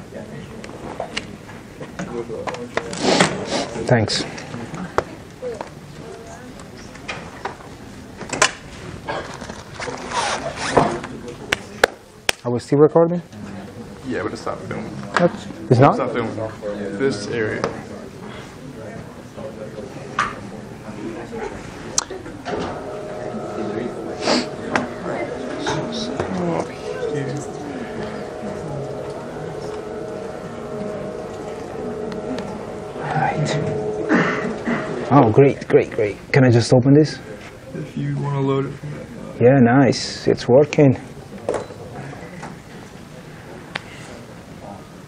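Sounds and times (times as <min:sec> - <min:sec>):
background hum with tones: 0:00.0 - 0:45.0
faint low voices murmuring: 0:00.0 - 0:45.0
zipper being pulled: 0:10.0 - 0:10.8.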